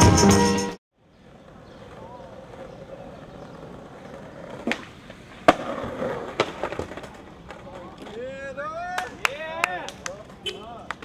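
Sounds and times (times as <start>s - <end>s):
skateboard wheels rolling: 1.0s - 11.0s
skateboard impacts: 1.2s - 9.2s.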